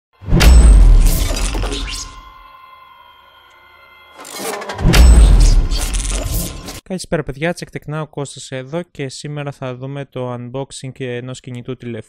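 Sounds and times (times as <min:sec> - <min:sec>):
deep bass hits with crash: 0:00.2 - 0:02.3, 0:04.8 - 0:06.7
quiet sustained tone: 0:01.1 - 0:06.7.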